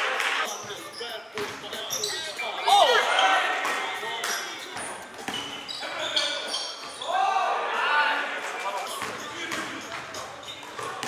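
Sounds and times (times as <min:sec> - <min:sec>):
players' voices echoing: 0:00.4 - 0:11.0.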